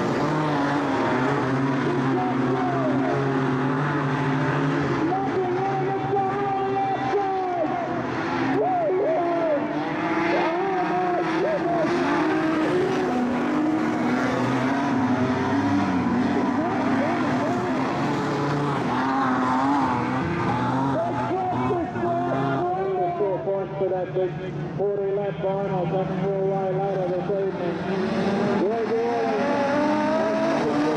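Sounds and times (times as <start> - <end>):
race car engines revving: 0.0 - 30.9.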